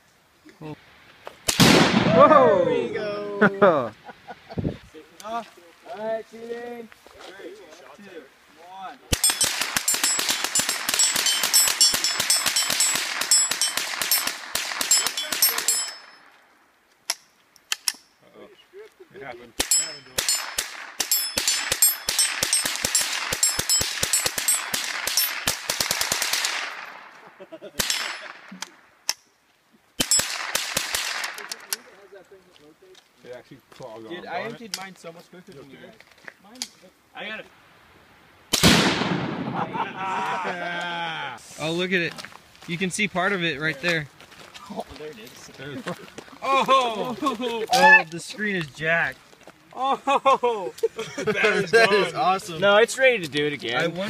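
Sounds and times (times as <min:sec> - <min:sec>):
rifles firing with echo: 0:01.5 - 0:02.2, 0:09.1 - 0:16.1, 0:19.6 - 0:27.1, 0:27.8 - 0:28.5, 0:30.0 - 0:31.7, 0:38.5 - 0:39.8
explosion boom echoing: 0:01.6 - 0:02.3, 0:38.6 - 0:39.9.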